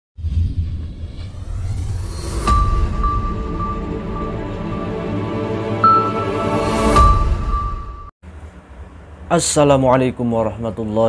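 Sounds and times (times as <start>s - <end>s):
deep rumble: 0.2s - 5.6s.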